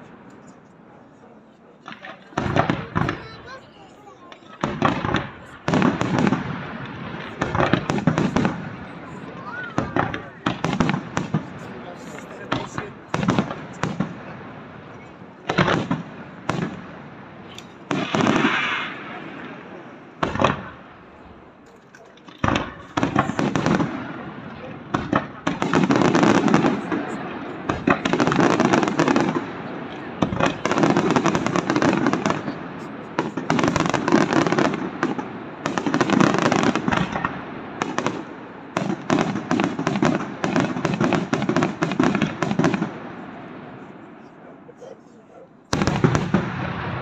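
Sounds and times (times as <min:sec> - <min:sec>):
firework bangs: 0:01.8 - 0:47.0
firework crackling: 0:01.8 - 0:47.0.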